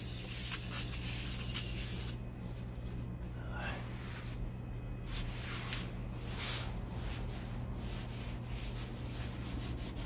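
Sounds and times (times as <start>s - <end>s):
aerosol can spraying: 0.0s - 2.2s.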